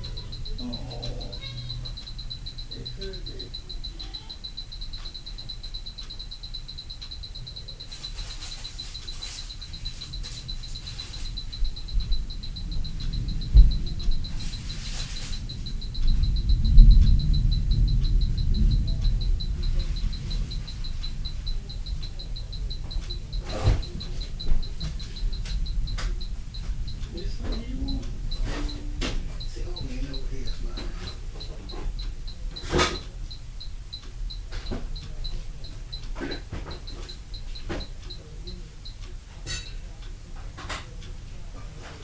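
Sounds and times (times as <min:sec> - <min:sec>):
high-pitched pulsing whine: 0:00.0 - 0:35.8
heavy thumping: 0:10.3 - 0:33.1.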